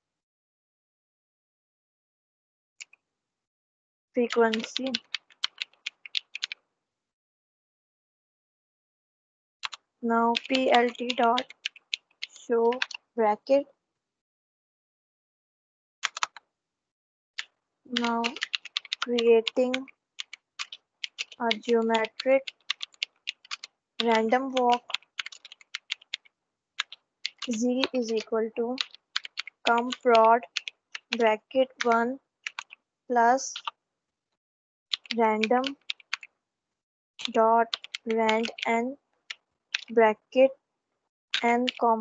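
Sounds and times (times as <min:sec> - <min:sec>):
computer keyboard typing: 0:04.2 - 0:06.6, 0:09.6 - 0:13.1, 0:16.0 - 0:16.4, 0:17.4 - 0:32.8, 0:33.4 - 0:33.8, 0:34.9 - 0:36.3, 0:37.2 - 0:40.0, 0:41.3 - 0:42.0.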